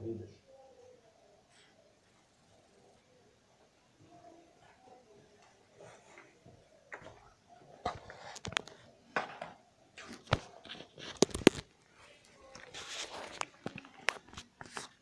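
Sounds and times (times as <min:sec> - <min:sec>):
recording device handling noise: 0:04.6 - 0:15.0
fabric rustling against microphone: 0:10.0 - 0:15.0.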